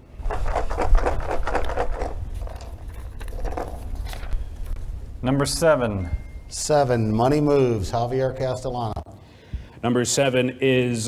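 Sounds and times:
paper rustling: 0.0s - 5.6s
pills rattling in a bottle: 0.2s - 4.8s.

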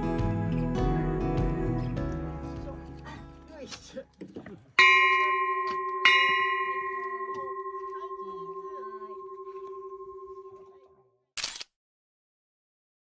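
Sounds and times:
temple bell ringing: 4.8s - 11.0s.

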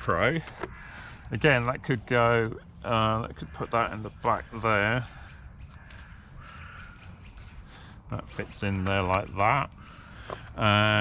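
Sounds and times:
distant bird calling: 0.0s - 11.0s.

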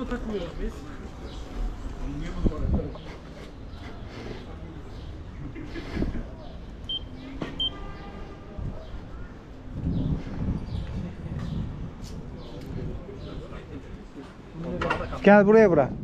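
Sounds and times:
wind rumble: 8.5s - 14.2s
people talking: 10.9s - 16.0s.

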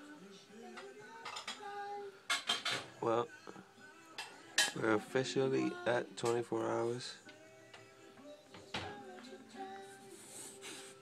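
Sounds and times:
faint background music or television: 0.0s - 11.0s
dishes clinking: 0.8s - 3.0s, 4.2s - 4.9s.

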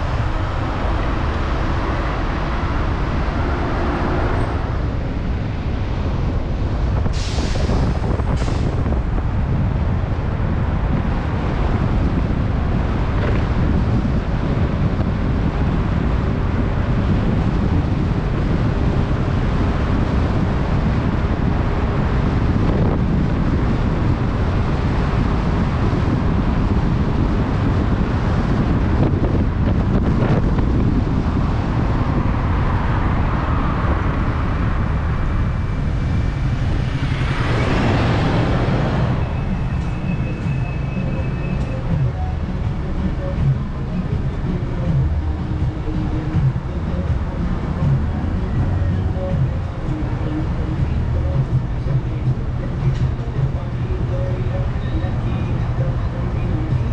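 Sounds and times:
road and traffic noise: 0.0s - 56.9s
wind rushing over microphone: 0.0s - 56.9s
loud hiss: 7.1s - 8.7s.

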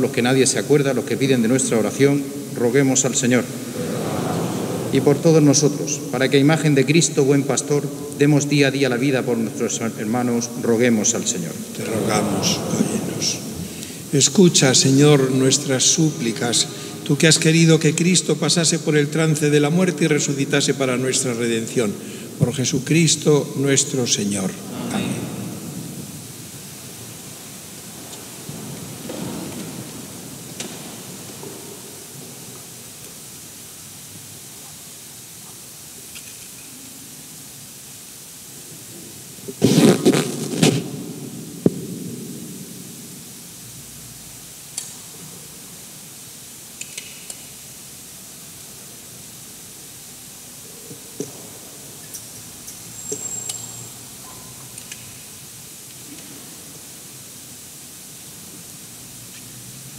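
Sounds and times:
steady hiss: 0.0s - 59.9s.

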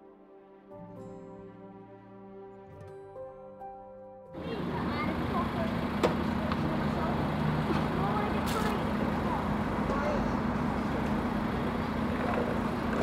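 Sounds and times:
children chattering: 4.4s - 13.0s
minibus engine idling: 4.4s - 13.0s.

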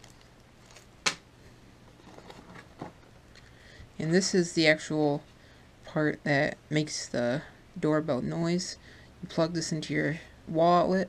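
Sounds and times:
faint handling noises: 0.0s - 3.5s.

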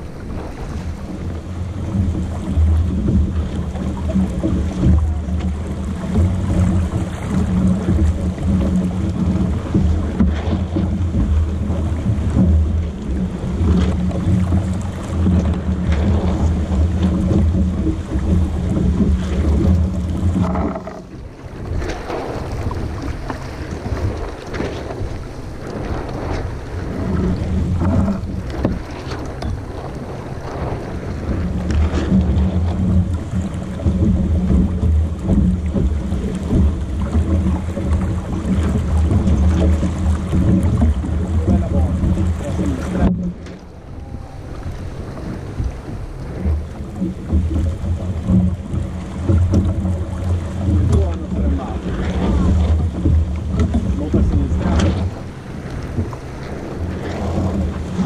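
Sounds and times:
water rushing along hull: 0.0s - 58.0s
wind buffeting microphone: 0.0s - 58.0s.

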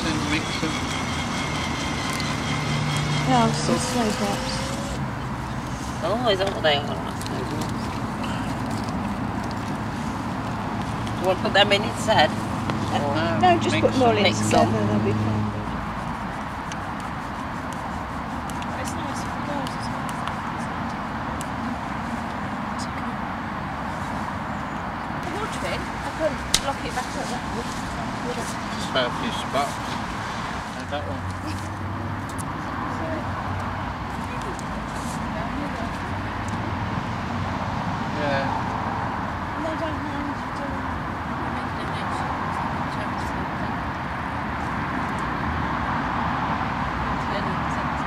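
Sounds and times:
outdoor rumble and hiss: 0.0s - 48.0s.

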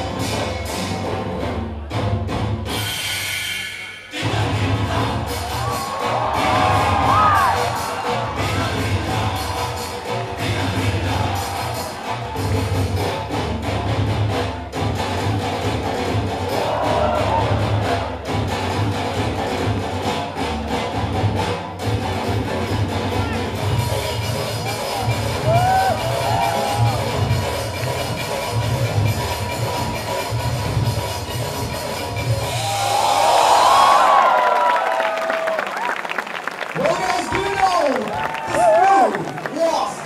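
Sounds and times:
dance music with heavy bass beat: 4.2s - 32.8s
audience cheering: 5.3s - 9.9s, 16.5s - 18.1s, 25.4s - 27.1s, 32.5s - 40.0s.

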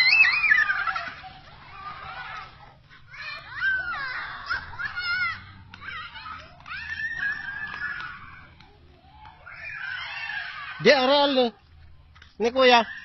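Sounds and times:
children squealing and shrieking: 0.0s - 11.6s, 12.6s - 13.0s.

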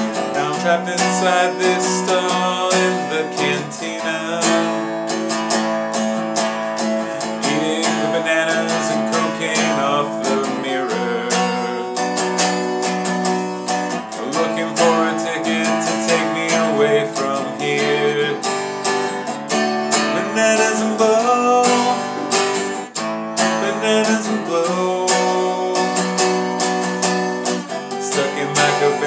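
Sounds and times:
guitar strummed: 0.0s - 29.0s.

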